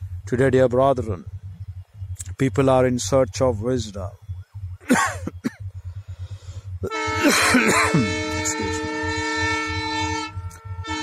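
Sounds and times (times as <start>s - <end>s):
train horn chord: 6.8s - 11.0s.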